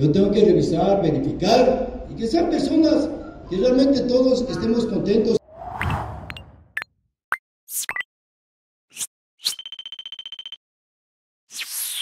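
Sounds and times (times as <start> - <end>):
fast-pulsing high beep: 9.5 - 10.6.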